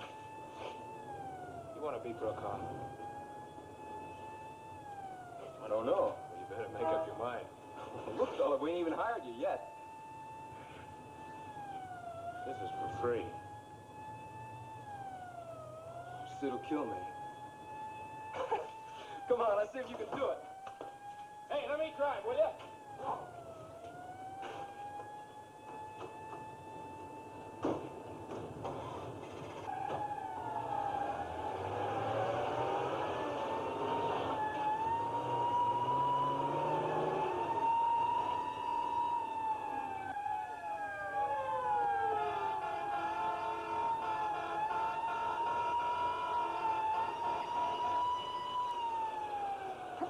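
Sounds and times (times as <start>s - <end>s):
siren pitch sliding down: 0.0s - 27.6s, 29.6s - 50.0s
vehicle sirens wailing: 0.0s - 50.0s.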